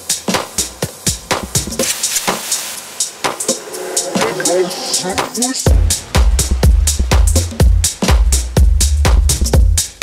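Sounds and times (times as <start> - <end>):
tech house hi-hat and percussion: 0.0 - 10.0.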